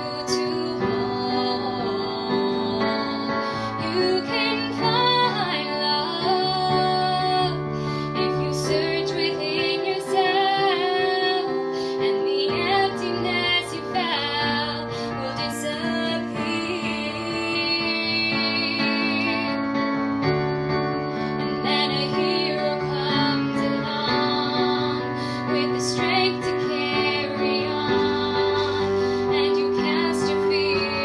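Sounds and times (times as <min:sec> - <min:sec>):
woman singing: 0:00.0 - 0:19.7, 0:21.4 - 0:31.0
digital keyboard chords: 0:00.0 - 0:31.0.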